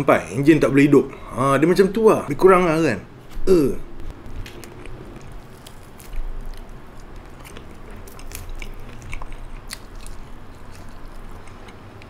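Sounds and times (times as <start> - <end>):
person chewing crunchy food: 3.9 - 12.0.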